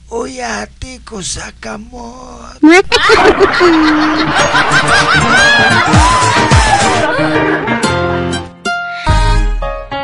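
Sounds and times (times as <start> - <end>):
canned laughter: 2.8 - 7.9.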